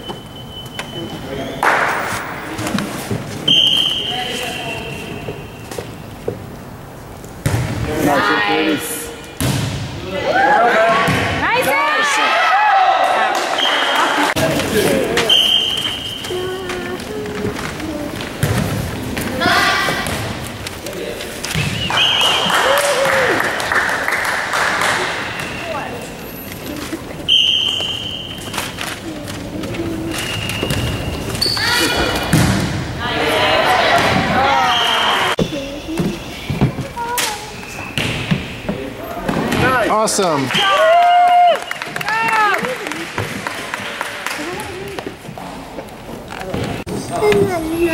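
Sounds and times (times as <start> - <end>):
volleyball bouncing on wooden floor: 7.4 - 7.9
short high squeaks: 30.1 - 32.1.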